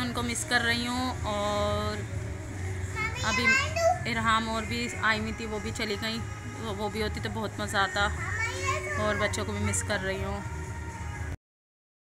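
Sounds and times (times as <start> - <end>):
woman talking: 0.0 - 2.1, 4.1 - 8.2, 9.0 - 10.5
young child's high voice: 3.0 - 4.1, 8.2 - 9.3.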